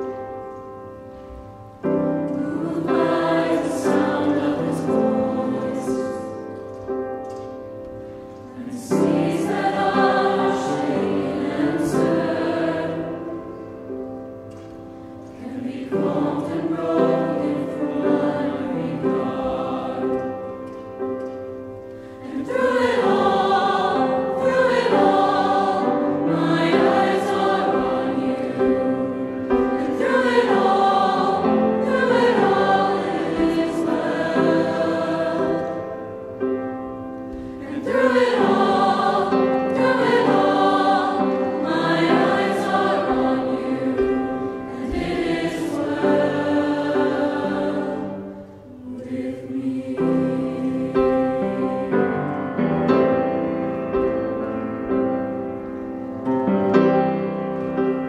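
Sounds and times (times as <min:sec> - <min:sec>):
mixed choir singing: 0:01.8 - 0:07.4, 0:08.0 - 0:53.4.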